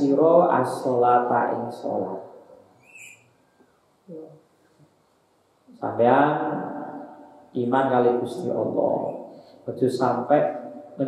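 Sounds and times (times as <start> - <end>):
man speaking: 0.0 - 2.4, 5.7 - 11.0
short high bird chirp: 2.8 - 3.3.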